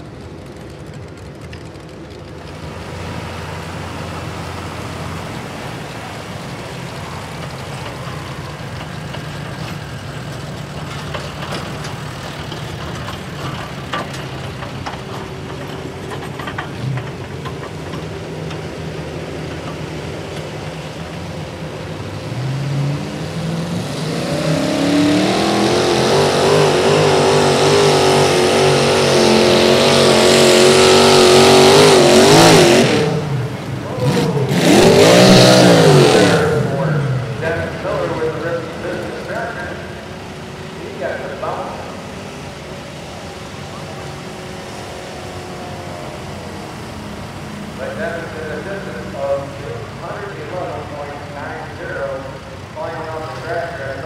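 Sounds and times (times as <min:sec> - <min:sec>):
tractor engine revving: 0:00.0 - 0:54.0.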